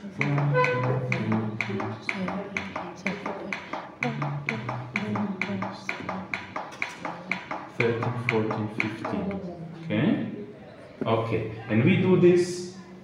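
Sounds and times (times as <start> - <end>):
voices quietly counting: 0.0 - 11.7.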